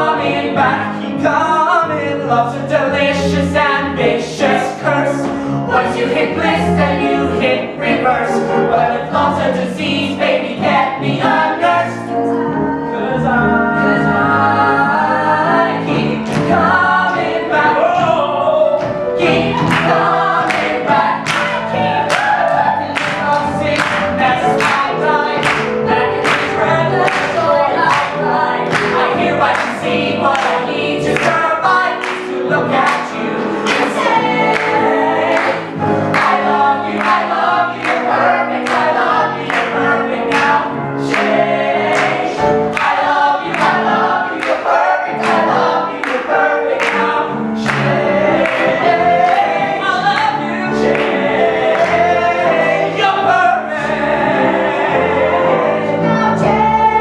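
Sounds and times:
group singing in harmony: 0:00.0 - 0:57.0
piano accompaniment: 0:00.0 - 0:57.0.

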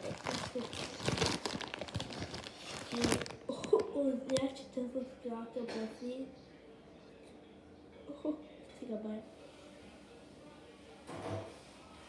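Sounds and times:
plastic candy bag crinkling: 0:00.0 - 0:04.5
child's voice: 0:02.9 - 0:06.3.

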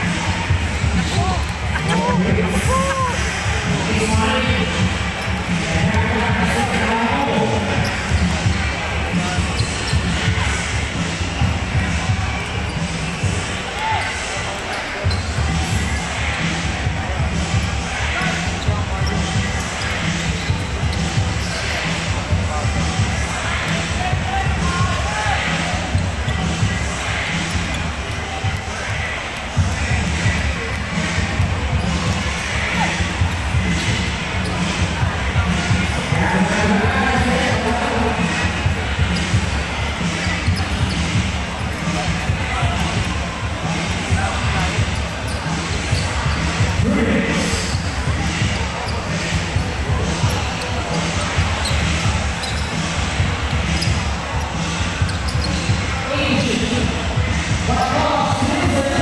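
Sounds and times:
voices of players and spectators: 0:00.0 - 0:59.0.

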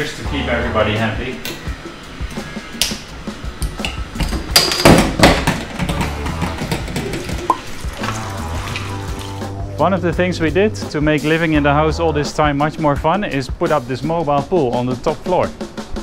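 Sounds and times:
background music with bass beat: 0:00.0 - 0:16.0.

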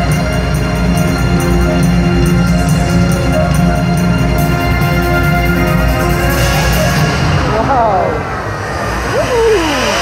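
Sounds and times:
show music over loudspeakers: 0:00.0 - 0:08.4.

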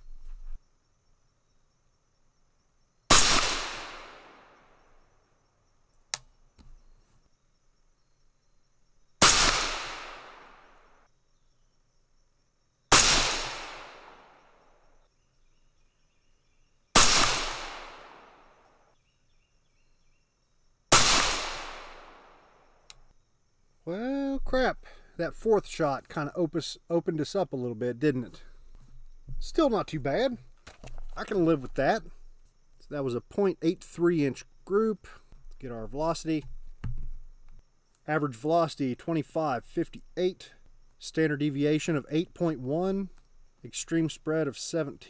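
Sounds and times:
gunshot echo: 0:03.1 - 0:04.6, 0:09.2 - 0:10.8, 0:12.9 - 0:14.5, 0:17.0 - 0:18.5, 0:20.9 - 0:22.4
suppressed rifle shots: 0:03.1 - 0:04.6, 0:09.2 - 0:10.8, 0:12.9 - 0:14.4, 0:17.0 - 0:18.5, 0:20.9 - 0:22.4.

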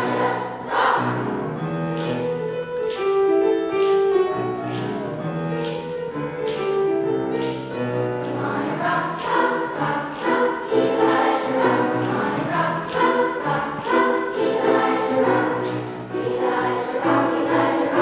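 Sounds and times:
children's choir singing: 0:00.0 - 0:18.0
piano accompaniment: 0:00.0 - 0:18.0.

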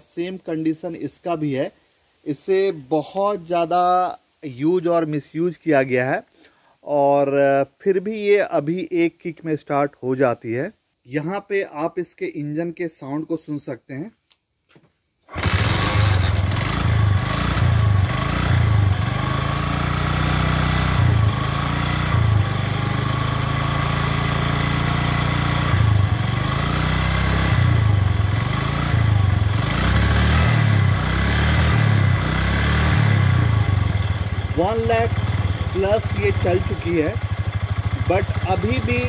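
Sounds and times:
scooter engine running: 0:15.3 - 0:39.0.

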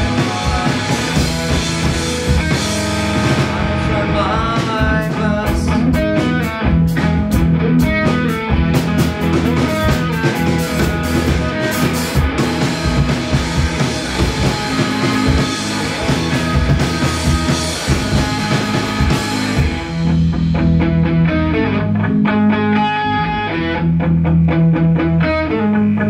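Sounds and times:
drum kit: 0:00.0 - 0:26.0
electric bass: 0:00.0 - 0:26.0
electric guitar: 0:00.0 - 0:26.0.

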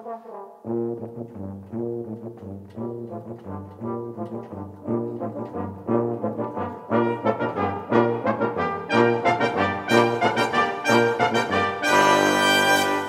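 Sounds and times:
brass quintet playing chords: 0:00.0 - 0:13.0.

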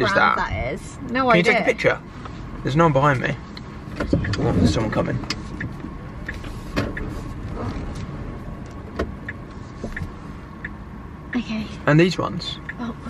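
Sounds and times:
tyres rumbling on road: 0:00.0 - 0:13.0.

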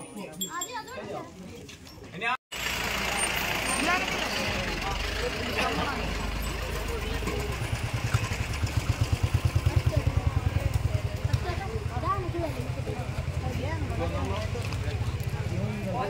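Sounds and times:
engine idling: 0:02.5 - 0:16.0
crowd chatter: 0:02.8 - 0:16.0.

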